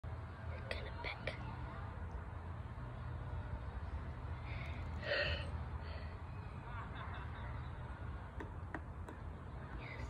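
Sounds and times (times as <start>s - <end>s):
person whispering: 0.5s - 1.4s.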